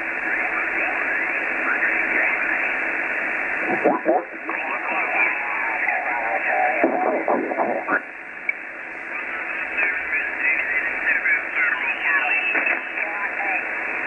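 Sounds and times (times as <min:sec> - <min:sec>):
radio band hiss: 0:00.0 - 0:14.0
radio voices sliding in pitch: 0:00.3 - 0:08.2.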